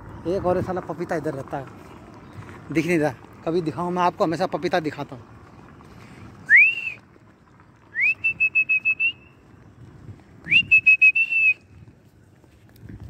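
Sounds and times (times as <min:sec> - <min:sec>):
person whistling rising notes: 0:06.4 - 0:07.0, 0:07.9 - 0:09.3, 0:10.4 - 0:11.6.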